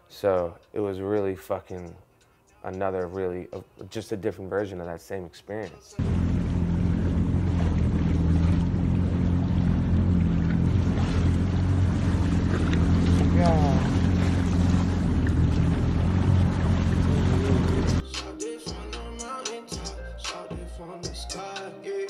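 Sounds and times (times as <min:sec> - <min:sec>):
water noise: 0:06.0 - 0:18.0
watercraft engine running: 0:06.0 - 0:18.0.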